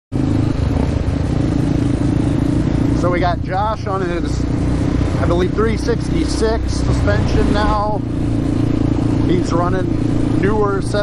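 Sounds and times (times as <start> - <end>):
quad bike engine running: 0.1 - 11.0.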